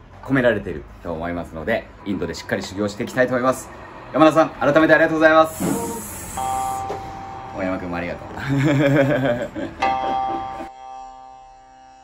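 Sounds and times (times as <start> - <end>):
laughter: 8.4 - 10.4.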